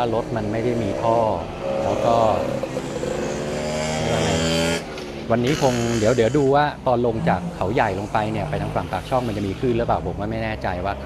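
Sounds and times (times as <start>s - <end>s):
person speaking a drawn-out syllable: 5.5s - 9.0s.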